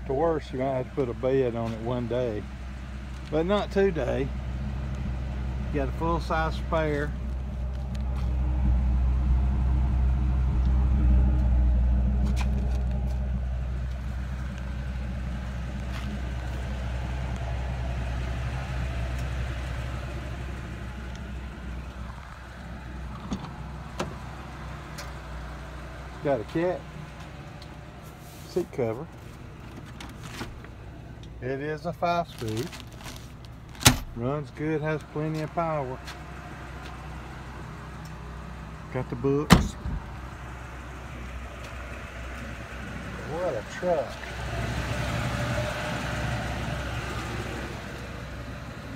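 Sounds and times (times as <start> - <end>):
truck engine idling: 0.0 - 48.9.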